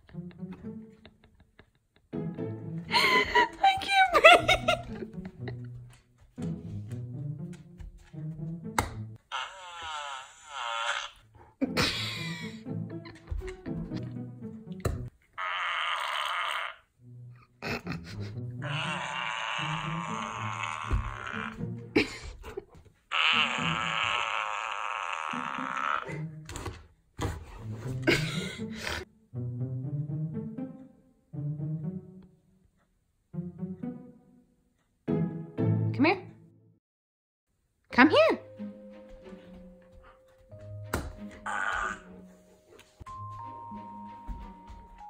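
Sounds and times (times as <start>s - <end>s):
background music: 0.0s - 15.2s, 16.9s - 36.8s, 37.9s - 45.0s
toy fart sound: 9.3s - 11.2s, 15.4s - 16.8s, 23.1s - 26.0s.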